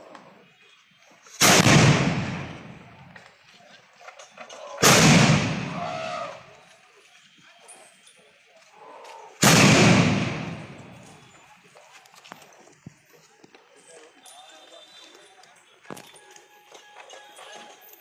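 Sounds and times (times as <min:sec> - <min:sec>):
cannon blast: 0:01.4 - 0:03.0, 0:04.8 - 0:06.1, 0:09.4 - 0:11.2.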